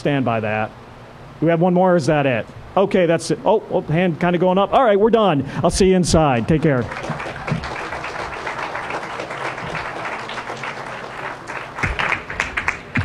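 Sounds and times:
audience applauding: 0:06.4 - 0:13.0.

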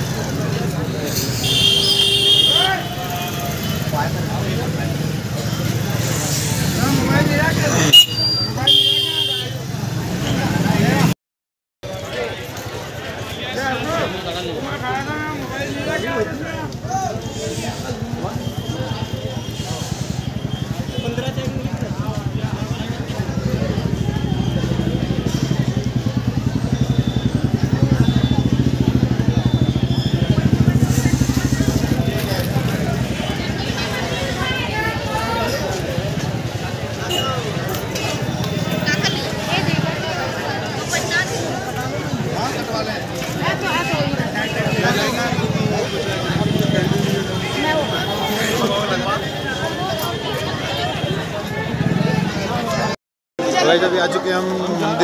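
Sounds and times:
motorbike traffic: 0:00.0 - 0:11.2, 0:11.8 - 0:55.0
street crowd chatter: 0:00.0 - 0:11.2, 0:11.8 - 0:55.0
vehicle horn honking: 0:01.4 - 0:03.1, 0:07.9 - 0:09.6, 0:37.1 - 0:37.5.

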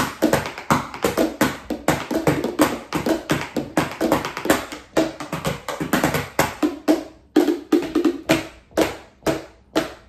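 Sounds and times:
sticks tapping plastic canisters: 0:00.0 - 0:10.0.

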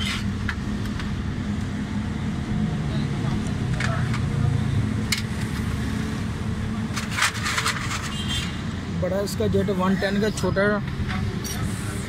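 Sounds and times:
motor vehicles running: 0:00.0 - 0:12.0.

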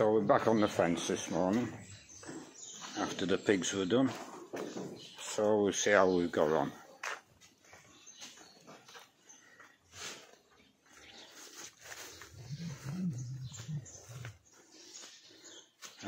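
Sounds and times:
animal's low wavering call: 0:12.3 - 0:14.4.

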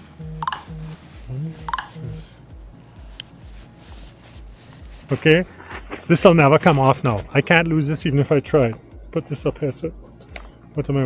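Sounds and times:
flat low tones: 0:00.0 - 0:03.9.

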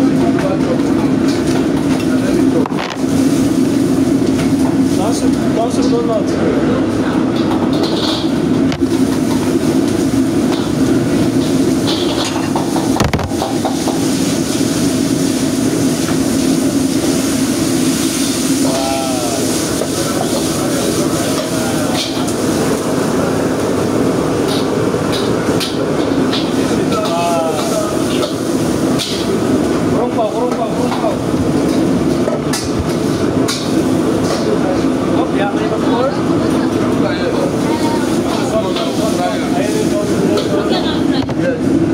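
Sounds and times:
gas burner and exhaust hood roar: 0:00.0 - 0:41.9.

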